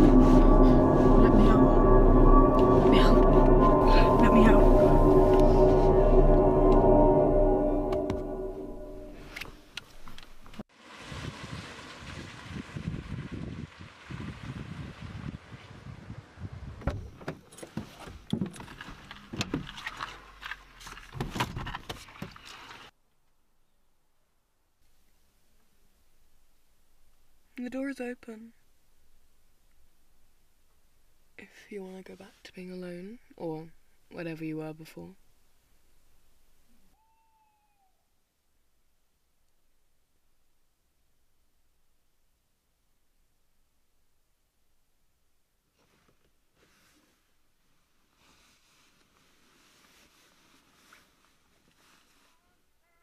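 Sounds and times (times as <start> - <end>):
faint falling tone: 0.0 - 9.4
wind buffeting microphone: 11.1 - 17.2.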